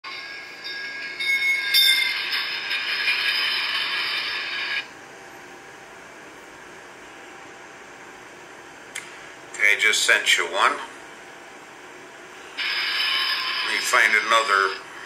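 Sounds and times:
steady high tones: 0.0s - 6.0s, 11.4s - 15.0s
train sound through phone speaker: 0.1s - 7.9s, 9.4s - 15.0s.

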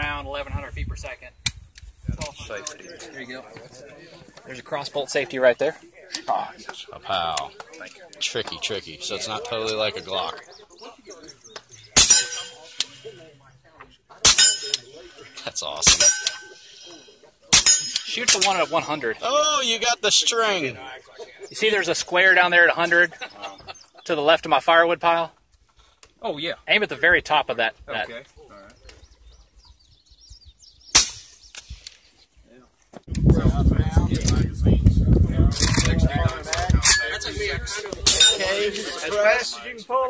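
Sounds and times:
suppressed handgun shot: 30.9s - 31.4s
lighter sharp crack: 31.0s - 31.7s.

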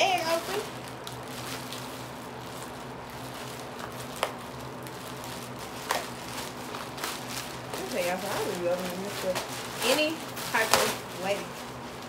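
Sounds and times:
plastic bag crinkling: 0.0s - 12.0s
steady low hum: 0.0s - 12.0s.

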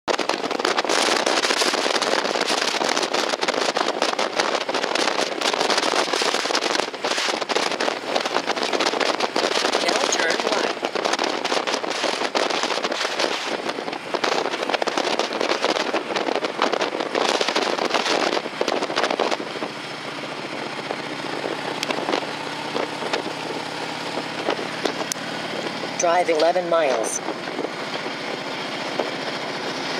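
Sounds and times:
motorcycle engine running: 0.1s - 29.9s
wind buffeting microphone: 0.1s - 29.9s.

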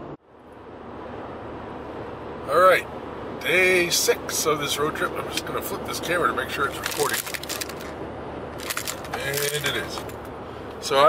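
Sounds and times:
car road noise: 0.0s - 11.0s.

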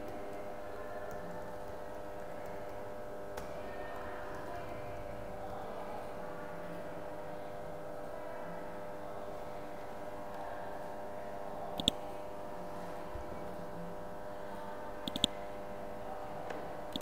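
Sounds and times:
steady background hum: 0.0s - 17.0s
sharp click: 15.1s - 15.4s.

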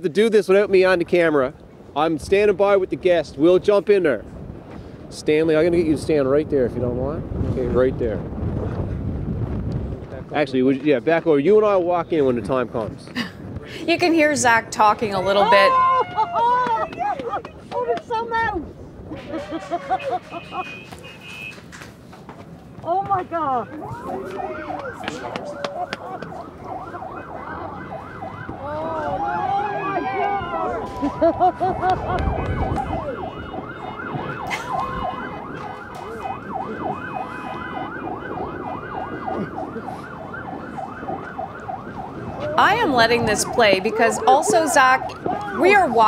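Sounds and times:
crowd noise: 13.5s - 46.0s
distant people talking: 22.8s - 33.4s
fire truck siren yelping: 23.3s - 46.0s.

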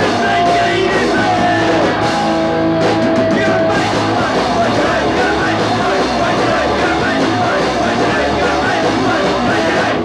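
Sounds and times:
punk rock music: 0.0s - 10.0s.

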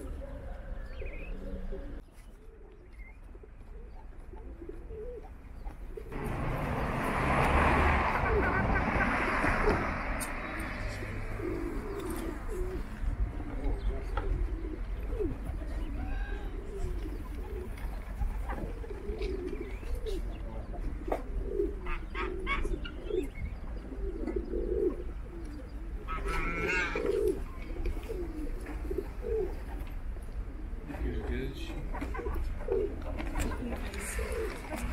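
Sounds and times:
pigeons cooing: 0.0s - 34.9s.

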